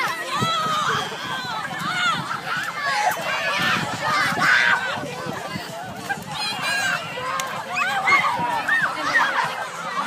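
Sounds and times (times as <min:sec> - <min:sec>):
children shouting and shrieking: 0:00.0 - 0:10.0.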